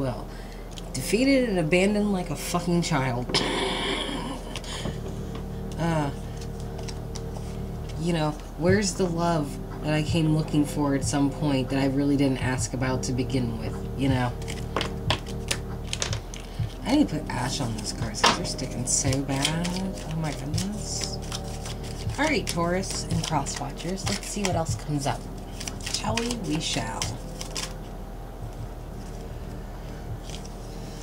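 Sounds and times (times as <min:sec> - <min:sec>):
cards being shuffled: 0:04.4 - 0:08.1, 0:14.3 - 0:27.9, 0:29.0 - 0:29.3, 0:29.9 - 0:31.0.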